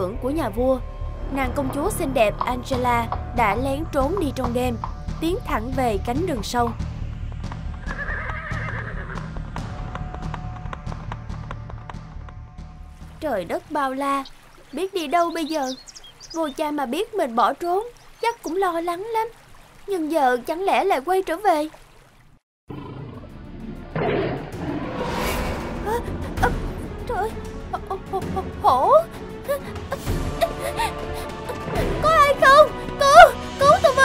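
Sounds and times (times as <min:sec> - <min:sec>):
background music: 0:00.0 - 0:17.9, 0:22.7 - 0:34.0
hooves clip-clopping: 0:07.3 - 0:13.7
horse neighing: 0:07.8 - 0:09.3
tiger growl: 0:22.7 - 0:26.2.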